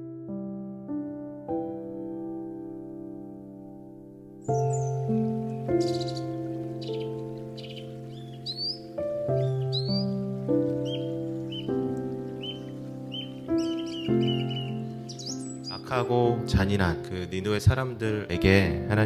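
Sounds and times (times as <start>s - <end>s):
sustained keyboard chords: 0.0s - 19.0s
birds chirping: 4.4s - 18.8s.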